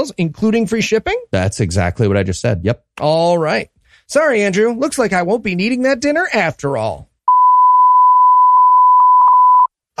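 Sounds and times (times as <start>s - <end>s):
censor bleep tone: 7.3s - 9.8s.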